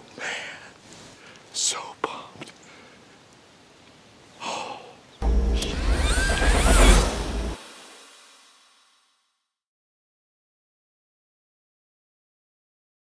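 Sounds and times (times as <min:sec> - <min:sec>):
breathy exhale: 0:04.4 - 0:04.9
sound effect sting with pitch glides: 0:05.2 - 0:09.2.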